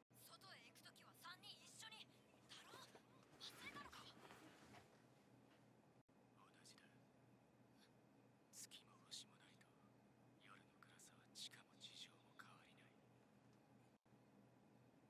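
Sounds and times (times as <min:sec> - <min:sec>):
faint low hum: 0:00.2 - 0:15.0
faint whispering speech: 0:06.4 - 0:07.0, 0:08.6 - 0:13.0.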